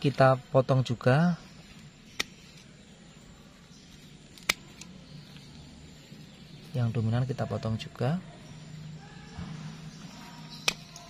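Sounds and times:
pruning shears snipping: 1.7 - 2.7, 3.8 - 5.6, 10.4 - 11.0.

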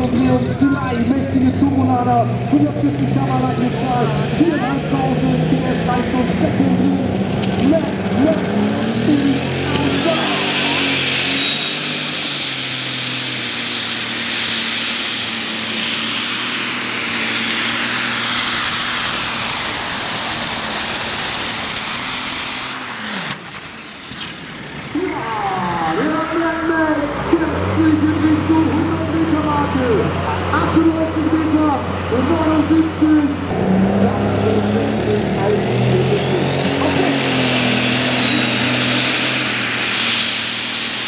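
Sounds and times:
pulling tractor engine at full throttle: 0.0 - 41.0
person speaking: 25.0 - 37.5.

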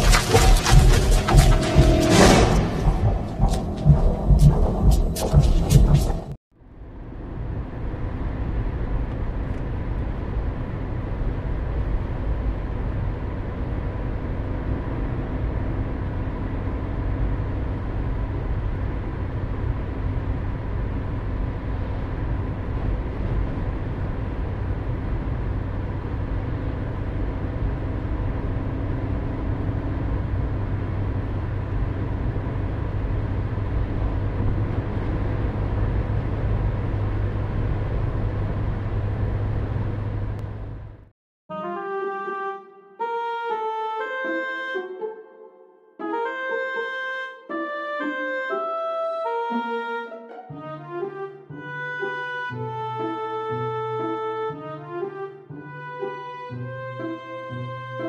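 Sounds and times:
car engine and tyre noise: 0.0 - 41.1.

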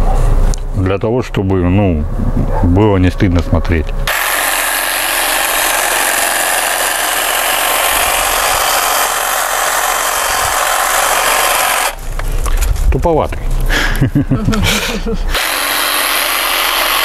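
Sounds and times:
electric hedge trimmer running: 4.1 - 12.2, 15.3 - 17.0.

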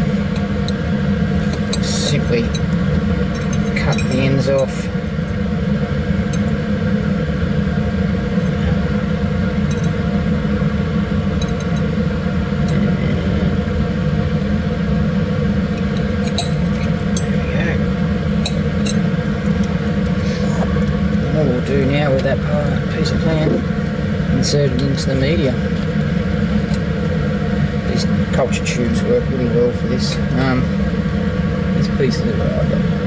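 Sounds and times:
cabinet blower droning: 0.0 - 33.0.

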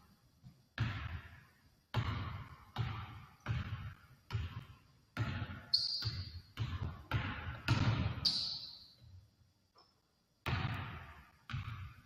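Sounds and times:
basketball bouncing on wooden floor: 0.4 - 9.2, 10.4 - 12.0.

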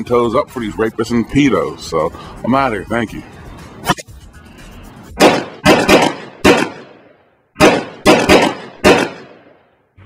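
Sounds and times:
gunshots with echo: 5.2 - 9.7.

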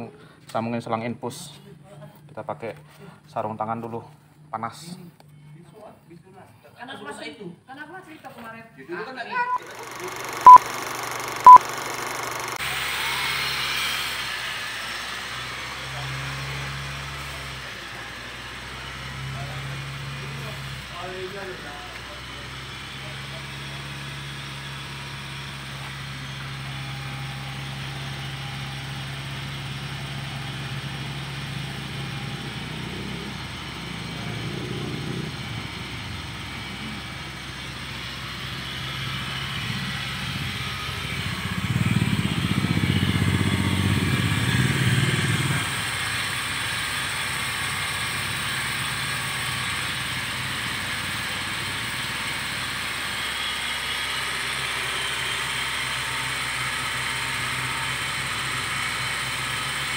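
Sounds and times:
car engine idling: 9.6 - 12.9, 14.4 - 59.9.

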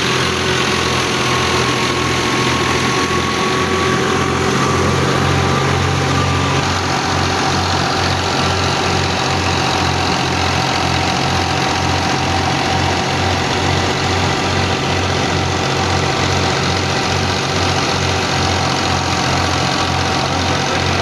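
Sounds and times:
tractor diesel engine running: 0.0 - 21.0
wheat thresher noise: 0.0 - 21.0.

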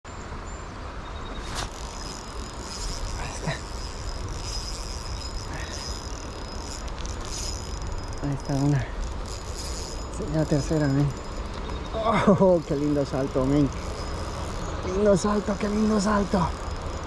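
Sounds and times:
flowing river water: 1.4 - 17.0.

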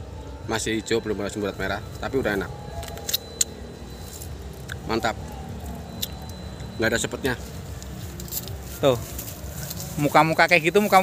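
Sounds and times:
man chewing grape: 4.1 - 6.6.

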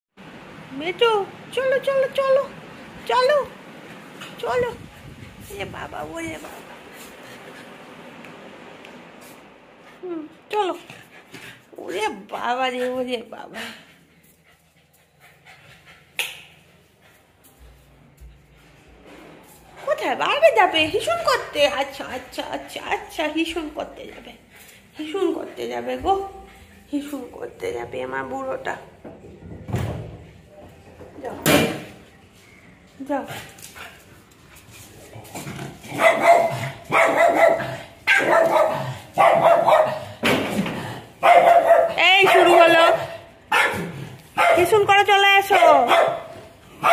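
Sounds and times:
small dog panting: 12.4 - 16.2
dog barking: 35.9 - 40.2, 41.2 - 44.8, 45.5 - 46.9.

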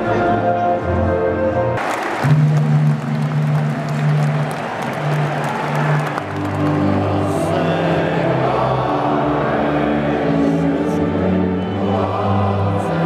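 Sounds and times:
anthem over stadium loudspeakers: 0.0 - 13.0
crowd applauding and cheering: 1.8 - 8.9.

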